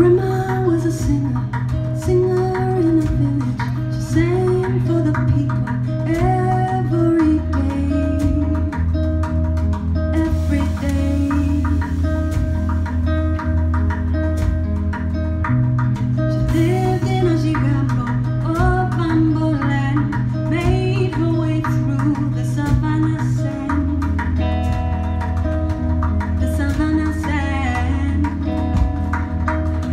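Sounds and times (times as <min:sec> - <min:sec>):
acoustic guitar: 0:00.0 - 0:29.9
drum kit percussion: 0:00.0 - 0:29.9.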